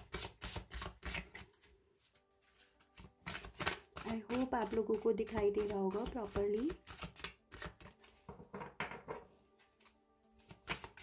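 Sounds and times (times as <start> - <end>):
cards being shuffled: 0.0 - 8.3, 9.5 - 11.0.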